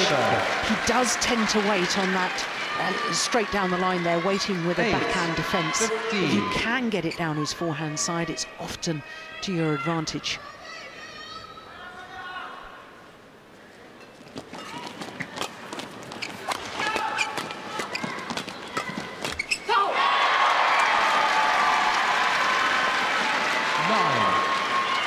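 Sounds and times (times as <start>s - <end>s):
crowd cheering and applauding: 0.0s - 6.5s, 19.9s - 25.0s.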